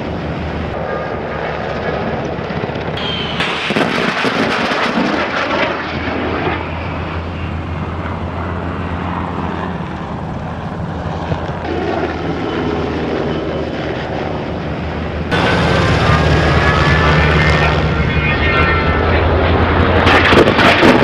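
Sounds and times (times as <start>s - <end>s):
jet engines flying past: 0.0s - 21.0s
whine falling in pitch: 15.3s - 20.2s.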